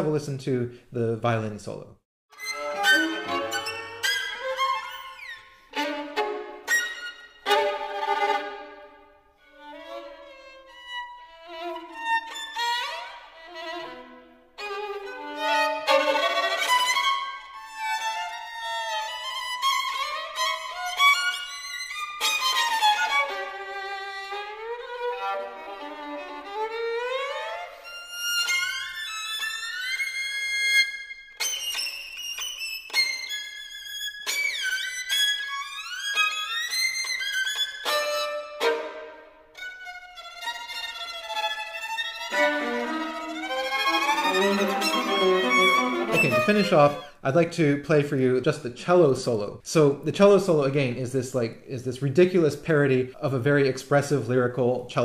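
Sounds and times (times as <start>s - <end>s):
solo violin playing fast: 2.3s - 47.7s.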